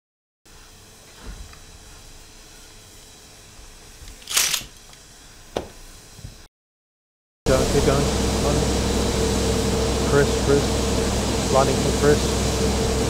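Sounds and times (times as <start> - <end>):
sharp click: 4.1 - 5.0.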